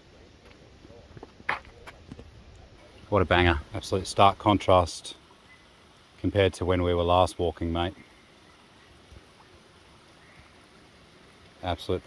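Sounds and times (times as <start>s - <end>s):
faint hiss: 0.0s - 12.0s.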